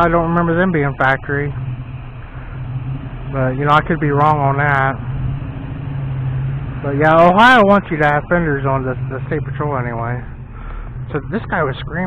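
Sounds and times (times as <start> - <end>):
man speaking: 0.0 - 1.6, 3.4 - 5.0, 6.8 - 10.3, 11.1 - 12.0
engine idling: 0.0 - 12.0.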